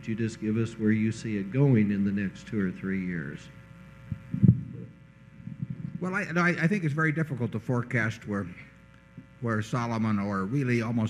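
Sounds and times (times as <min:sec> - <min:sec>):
electrical hum: 0:00.0 - 0:11.0
thumps on table microphone: 0:04.1 - 0:06.0.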